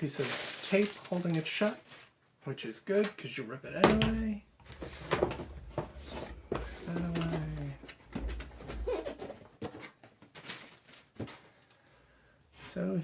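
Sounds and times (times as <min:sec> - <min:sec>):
cardboard and foam rustling: 0:00.0 - 0:02.2, 0:04.0 - 0:11.5.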